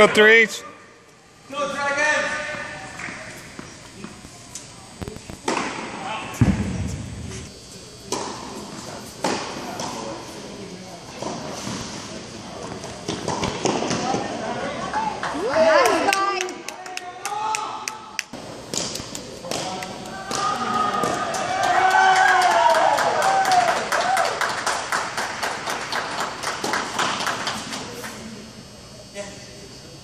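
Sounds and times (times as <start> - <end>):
tennis balls struck by rackets: 5.4 - 7.5, 9.2 - 10.1
heavy thud: 6.4 - 7.5.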